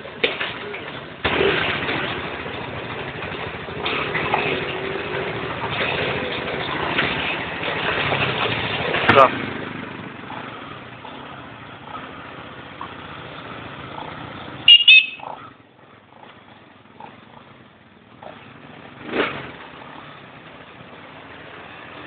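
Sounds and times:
quad bike engines running: 0.0 - 22.0.

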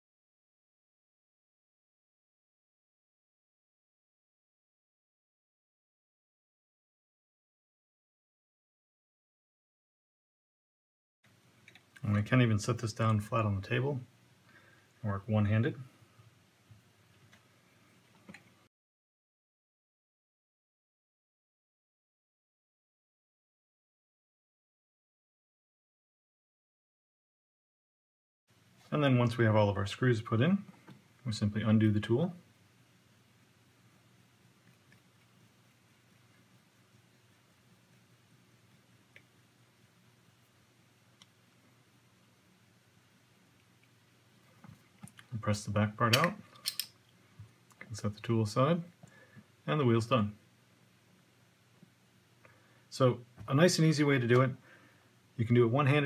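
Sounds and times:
faint low hum: 28.5 - 56.0.

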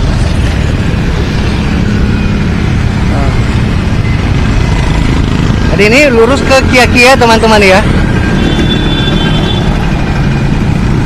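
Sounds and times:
motorcycle engines passing: 0.0 - 11.0
street traffic: 0.0 - 11.0.

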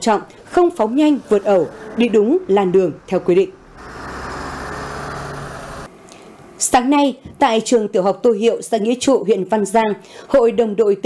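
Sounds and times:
road traffic engines humming: 0.0 - 6.6.

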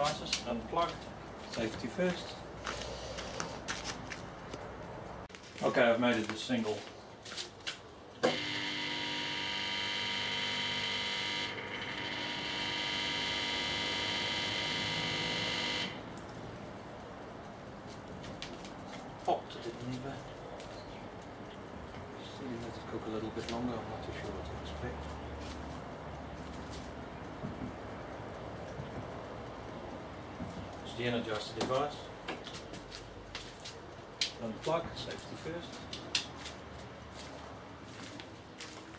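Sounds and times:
electrical buzz: 8.2 - 16.9.

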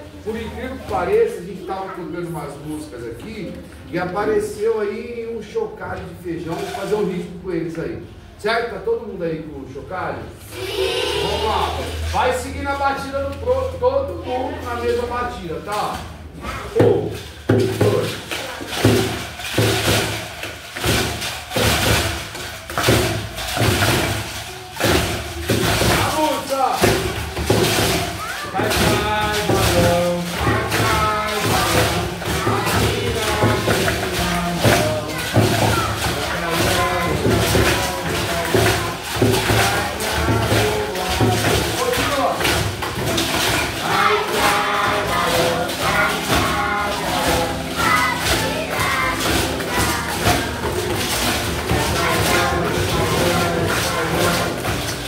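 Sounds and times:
bean shakers rattling: 6.3 - 7.4, 10.2 - 55.0
children's voices: 10.4 - 12.2, 14.1 - 15.2, 16.0 - 16.8, 23.6 - 42.4, 43.2 - 54.6
acoustic guitar strumming: 17.5 - 55.0.

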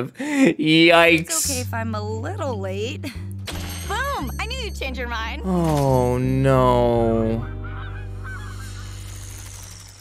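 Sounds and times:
held low musical chord: 1.2 - 9.5.

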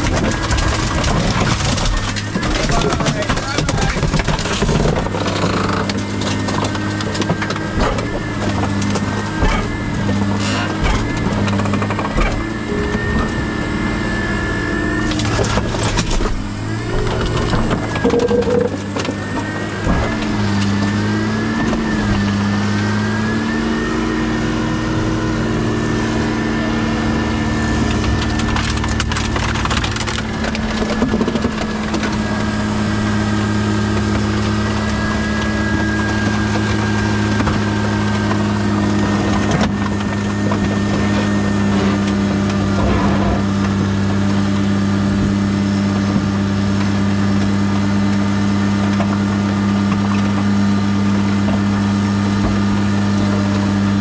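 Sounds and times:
scrap metal crunching and cracking: 0.0 - 23.2, 26.7 - 54.0
hydraulic power unit humming: 0.0 - 54.0.

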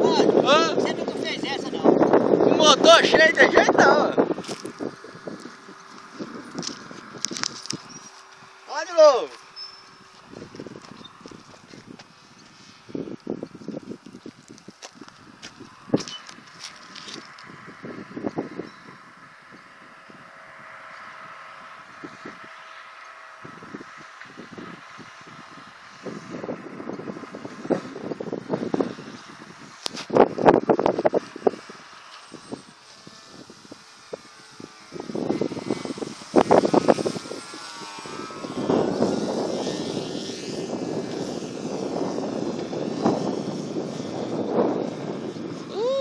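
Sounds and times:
model airplane motor buzzing: 0.0 - 46.0
wind buffeting microphone: 0.0 - 46.0.

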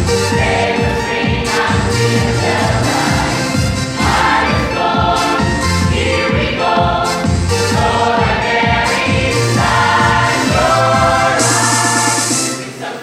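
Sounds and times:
steady beat: 0.0 - 12.6
mixed choir singing gospel: 0.0 - 13.0.

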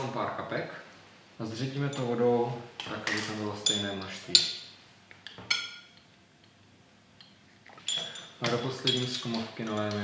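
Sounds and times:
glass test tube clinking: 3.6 - 4.6, 7.2 - 10.0.

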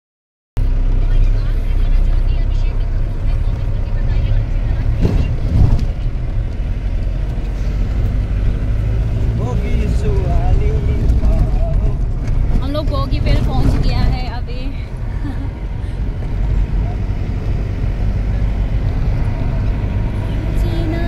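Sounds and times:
vehicle cabin rumble: 0.6 - 21.0.

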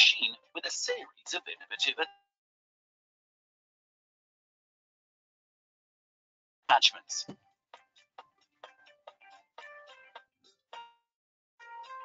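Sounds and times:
narrator's voice: 0.0 - 2.1, 6.7 - 7.3.

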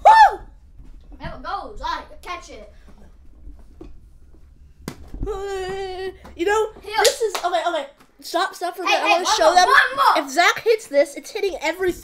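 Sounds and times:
boy crying out: 0.0 - 0.5
football slapping into hands: 4.8 - 5.2.

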